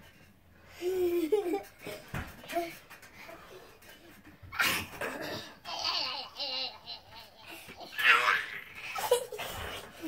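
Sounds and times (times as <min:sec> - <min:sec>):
girls laughing and giggling: 0:05.6 - 0:10.0.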